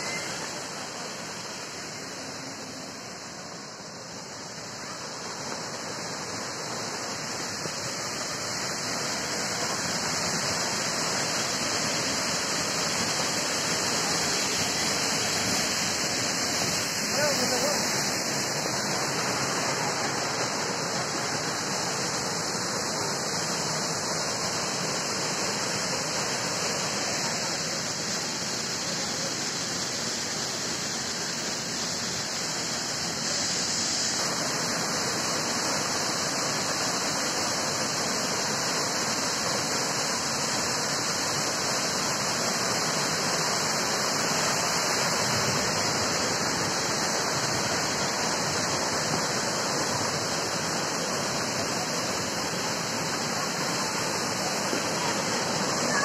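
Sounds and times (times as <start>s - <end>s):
waterfall pouring over rocks: 0.0s - 56.0s.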